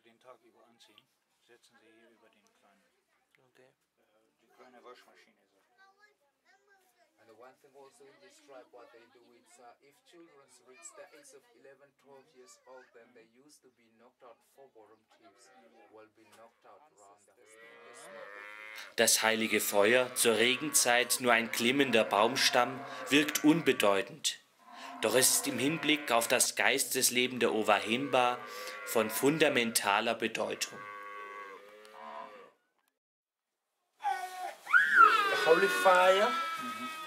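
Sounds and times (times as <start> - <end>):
cattle mooing: 17.6 - 18.9, 19.6 - 24.0, 24.6 - 26.4, 27.7 - 32.5, 35.0 - 37.0.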